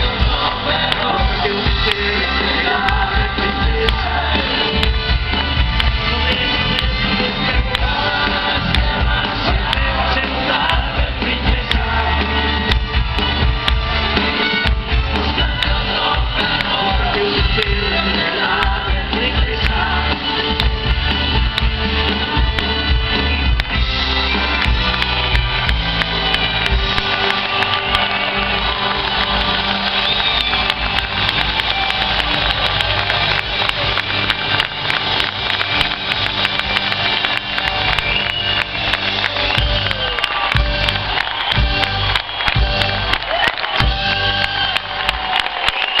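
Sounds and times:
distorted live rock band: 0.0s - 46.0s.

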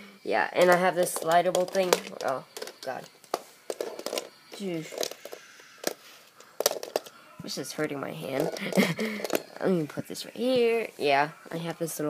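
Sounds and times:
plastic bricks clicking: 0.6s - 7.2s, 8.3s - 9.7s.

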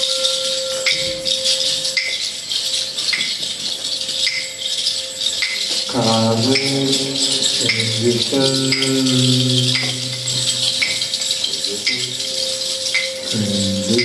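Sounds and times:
cymbals and hand percussion: 0.0s - 14.0s.

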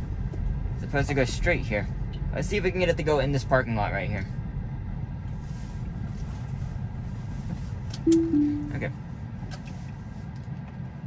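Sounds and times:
road and cabin noise: 0.0s - 11.0s
two-note falling chime: 8.1s - 8.9s.

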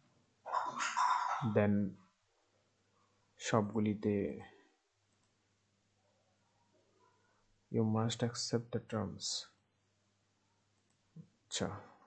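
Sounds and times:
man's voice: 1.4s - 1.9s, 3.4s - 4.5s, 7.8s - 9.5s.

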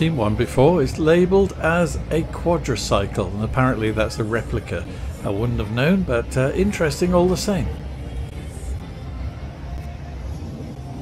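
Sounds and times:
low indoor background rumble: 0.0s - 11.0s.

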